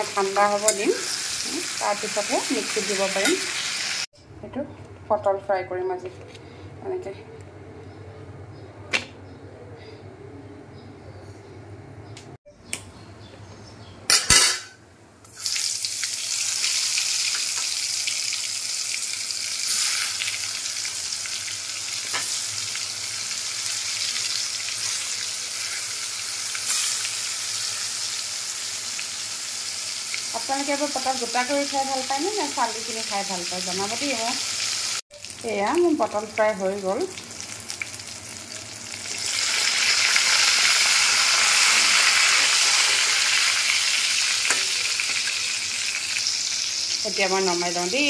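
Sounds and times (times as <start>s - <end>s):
vegetables sizzling in hot oil: 0.0s - 4.1s, 15.3s - 48.0s.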